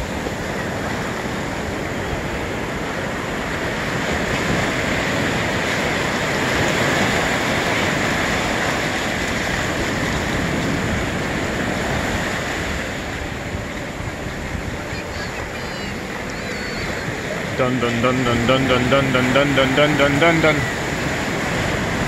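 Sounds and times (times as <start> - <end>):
ocean surf breaking: 0.0 - 22.0.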